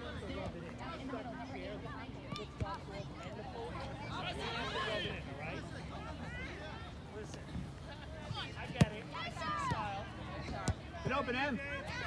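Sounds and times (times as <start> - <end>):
soccer ball being kicked: 8.6 - 9.0.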